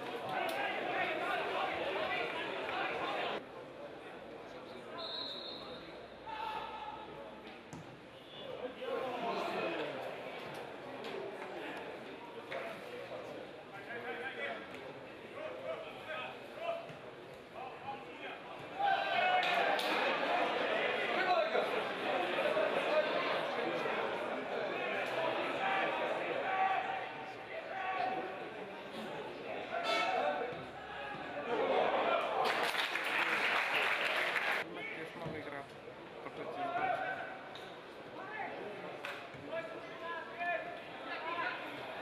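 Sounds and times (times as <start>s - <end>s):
football crowd shouting: 0.0s - 3.4s, 18.3s - 28.4s, 29.4s - 34.7s.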